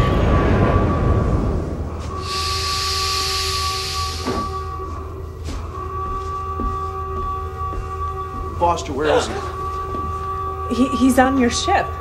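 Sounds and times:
low rumble: 0.0s - 3.4s
electronic drone: 0.0s - 5.4s
loud hiss: 2.2s - 4.6s.

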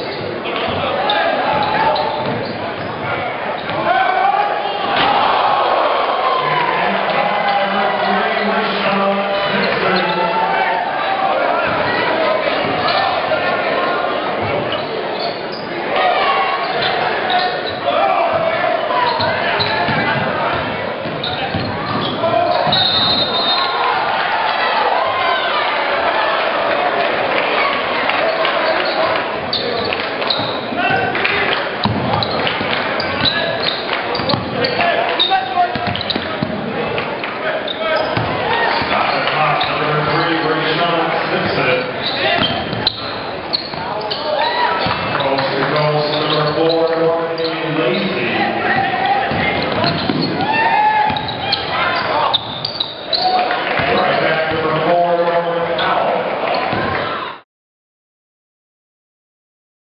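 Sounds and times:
sneakers squeaking: 0.0s - 4.1s, 7.4s - 24.0s, 27.7s - 54.6s, 55.7s - 57.3s
crowd chatter: 0.0s - 57.4s
basketball bouncing: 1.5s - 3.0s, 19.2s - 22.8s, 34.1s - 34.6s, 35.7s - 36.7s, 38.0s - 39.0s, 48.7s - 51.7s.

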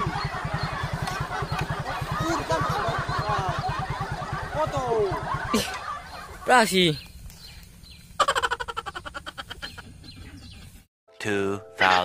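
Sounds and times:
birds chirping: 0.0s - 10.9s.

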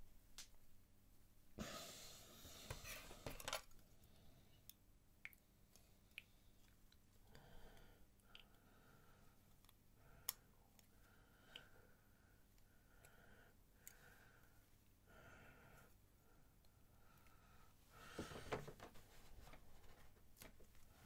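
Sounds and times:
faint clicks of small parts: 3.2s - 8.7s, 9.4s - 11.8s, 13.8s - 14.5s.

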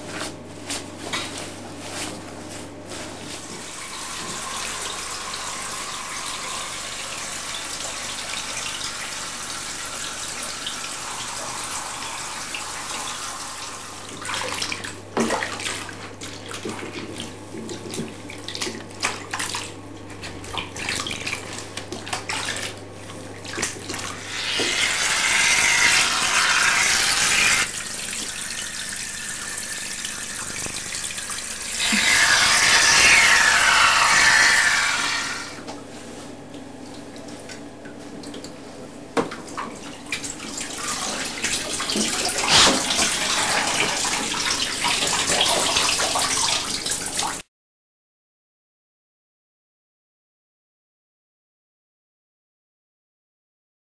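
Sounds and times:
running water in bathtub: 0.7s - 35.7s, 39.3s - 47.4s
water splashing and sloshing: 14.0s - 25.0s, 35.7s - 47.4s.

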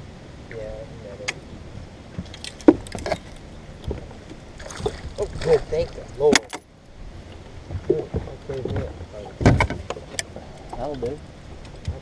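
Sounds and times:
fish splashing in water: 4.6s - 6.2s.

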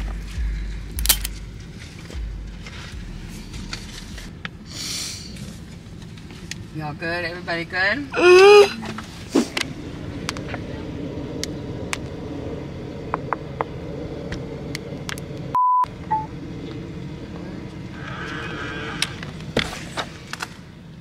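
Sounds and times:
steady outdoor hum: 0.0s - 21.0s
test-tone beep: 15.6s - 16.3s.

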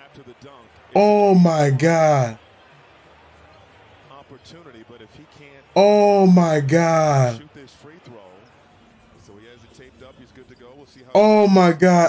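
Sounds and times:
faint basketball broadcast: 0.0s - 12.0s
low arena ambience: 0.8s - 2.5s, 5.7s - 7.5s, 11.2s - 12.0s
faint voice: 1.0s - 2.4s, 5.8s - 7.4s, 11.2s - 12.0s
person speaking: 1.0s - 2.4s, 5.8s - 7.4s, 11.2s - 12.0s.

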